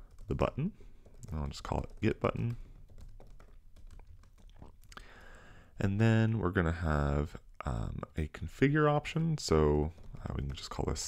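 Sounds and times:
typing on computer keyboard: 0.0 - 5.0, 9.8 - 11.0.

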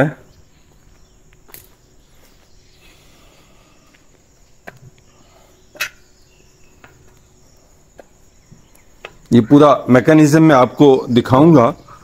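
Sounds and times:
insects calling: 0.0 - 12.0
footstep clicks: 0.6 - 2.6, 3.8 - 5.1, 6.7 - 9.4.

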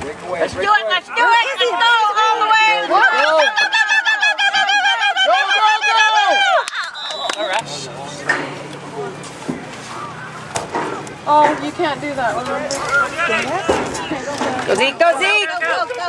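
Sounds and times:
open-air crowd noise: 0.0 - 16.0
spectator yelling cheers: 1.1 - 7.6.

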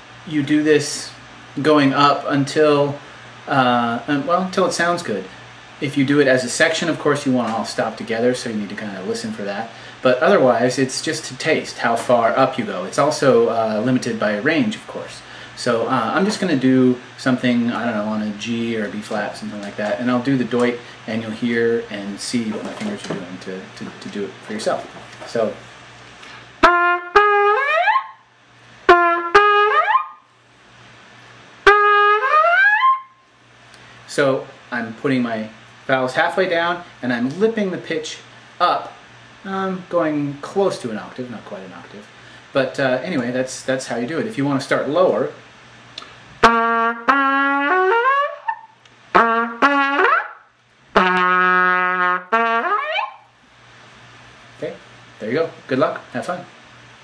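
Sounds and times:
trumpet playing upward slides: 26.6 - 28.2, 28.9 - 30.2, 31.6 - 33.2, 46.4 - 50.4, 51.0 - 53.3.

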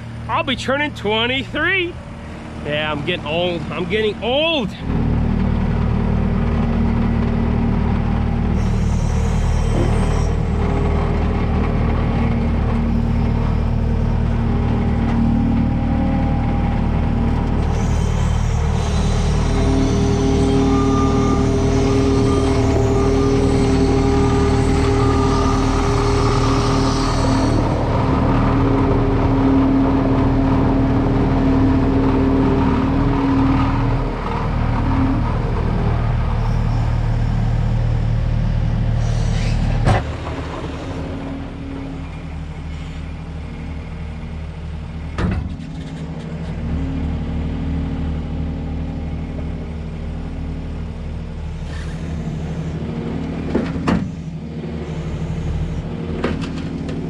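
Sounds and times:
diesel engine running: 0.0 - 57.0.

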